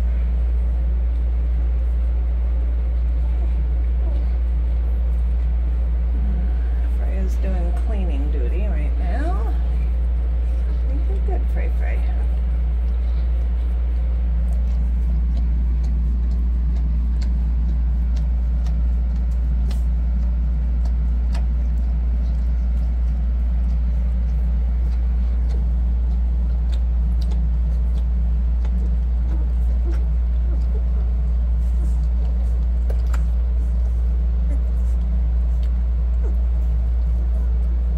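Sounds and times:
puppies suckling clicks: 0:00.0 - 0:06.2, 0:06.9 - 0:37.9
steady low hum: 0:00.0 - 0:37.9.

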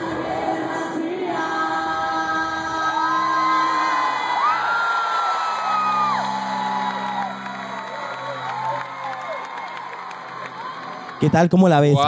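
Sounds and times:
audience whooping and cheering: 0:02.9 - 0:12.0.

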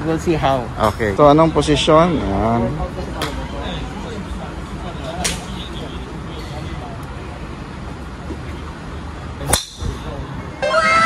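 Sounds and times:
background murmur: 0:00.0 - 0:11.0
golf club striking ball: 0:09.4 - 0:10.2.

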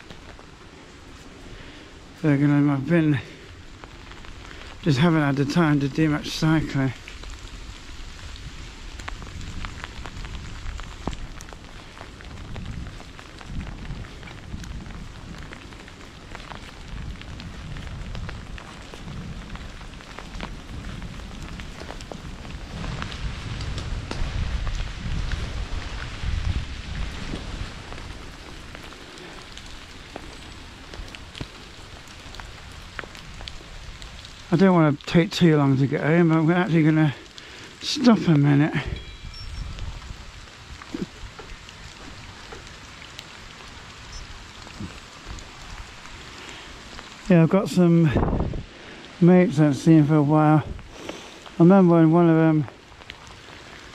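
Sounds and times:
rain drops ticking: 0:00.0 - 0:53.9.

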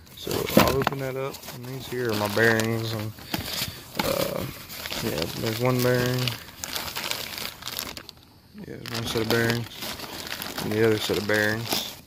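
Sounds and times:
plastic and foam wrap crinkling: 0:00.0 - 0:12.0.

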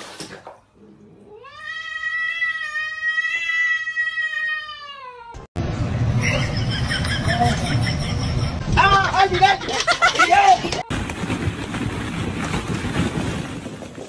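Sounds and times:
cat yowling: 0:01.4 - 0:05.4.

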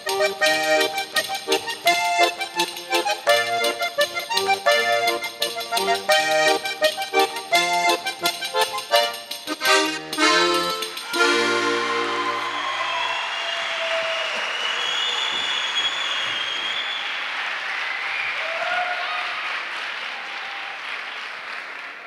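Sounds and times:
accordion music chord: 0:00.0 - 0:12.6
audience applauding: 0:11.5 - 0:22.0.

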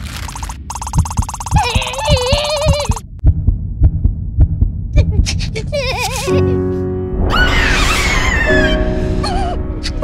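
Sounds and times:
cartoon fast heartbeat: 0:00.3 - 0:05.4.

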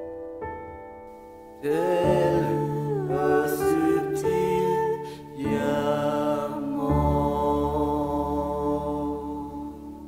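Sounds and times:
romantic piano: 0:00.0 - 0:10.0
person singing long notes: 0:01.6 - 0:10.0.

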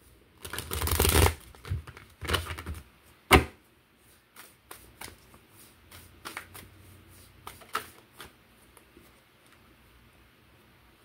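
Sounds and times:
cards being shuffled: 0:00.4 - 0:02.8, 0:07.4 - 0:08.4.

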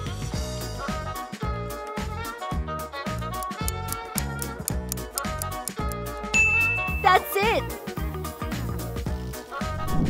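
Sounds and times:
upbeat swing music: 0:00.0 - 0:10.0
bright ding: 0:06.4 - 0:07.3.

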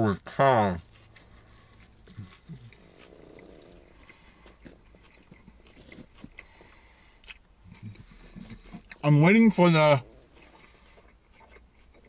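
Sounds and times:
low hums: 0:00.8 - 0:08.5
person chewing food: 0:00.8 - 0:09.4, 0:10.0 - 0:12.0
wet mouth clicks: 0:01.1 - 0:06.6, 0:07.2 - 0:09.0.

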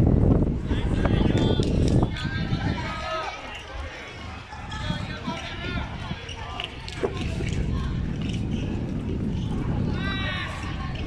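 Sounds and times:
children calling and chattering: 0:00.5 - 0:11.0.

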